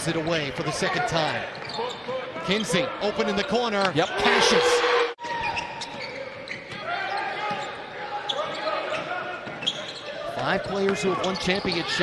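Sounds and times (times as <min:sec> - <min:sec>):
crowd cheering: 0:04.0 - 0:05.6.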